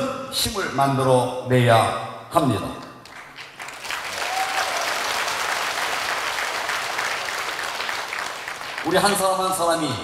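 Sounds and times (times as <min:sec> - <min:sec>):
audience applause: 0:03.1 - 0:09.4.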